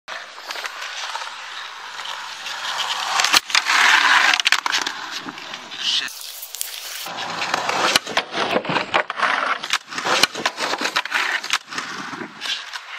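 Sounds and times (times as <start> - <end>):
skateboard wheels rolling on concrete: 0.1 - 12.9
skateboard clacks: 0.4 - 6.0.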